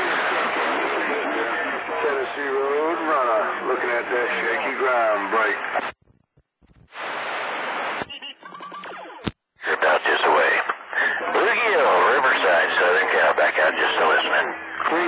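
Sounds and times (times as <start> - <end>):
radio static hiss: 0.0 - 15.0
garbled radio voice: 8.4 - 15.0.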